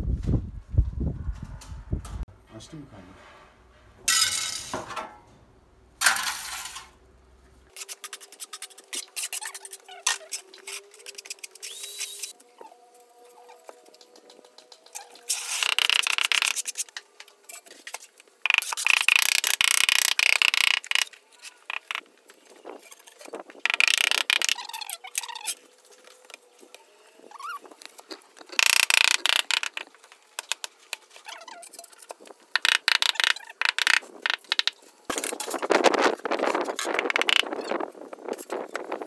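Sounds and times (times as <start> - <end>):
tile squeaks: 7.8 - 12.8, 15.0 - 16.9, 17.9 - 22.0, 22.8 - 25.7, 27.2 - 27.7, 28.5 - 29.8, 31.2 - 35.4.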